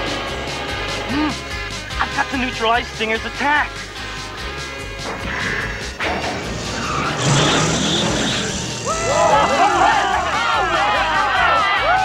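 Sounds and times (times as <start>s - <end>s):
action music: 0.0s - 12.0s
cartoon tires squealing: 6.7s - 10.6s.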